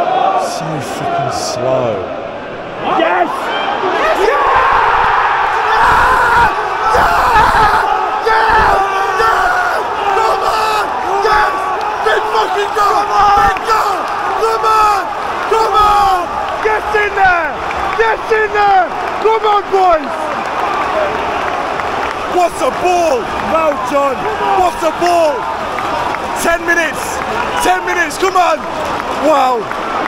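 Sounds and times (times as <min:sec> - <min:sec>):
stadium crowd roaring: 0:00.0 - 0:30.0
men screaming and shouting: 0:02.8 - 0:29.7.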